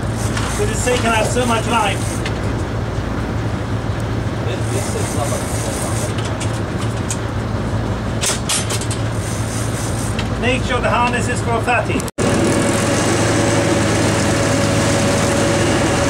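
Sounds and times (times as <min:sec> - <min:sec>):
boat engines droning: 0:00.0 - 0:16.0
wind: 0:00.0 - 0:16.0
water noise: 0:12.2 - 0:16.0.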